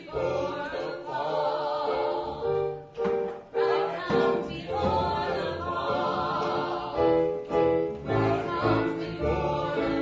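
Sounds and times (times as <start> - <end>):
people singing: 0.0 - 10.0
piano accompaniment: 0.0 - 10.0.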